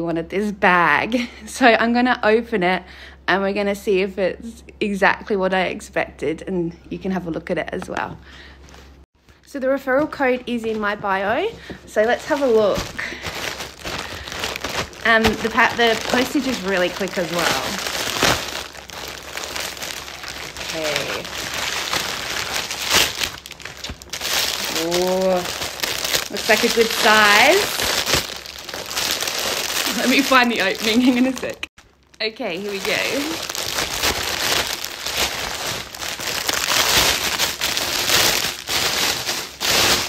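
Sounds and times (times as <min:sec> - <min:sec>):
plastic bag crinkling: 0:10.4 - 0:40.0.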